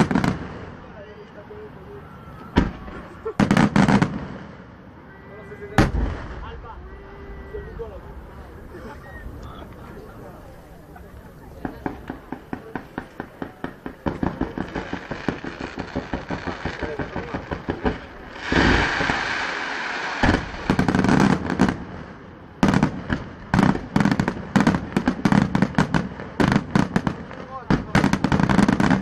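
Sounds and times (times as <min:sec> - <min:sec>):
fireworks pops and cracks: 0:00.0 - 0:00.8, 0:02.4 - 0:04.6, 0:11.1 - 0:29.0
fireworks bangs: 0:00.0 - 0:29.0
firework rushing hiss: 0:10.7 - 0:27.2.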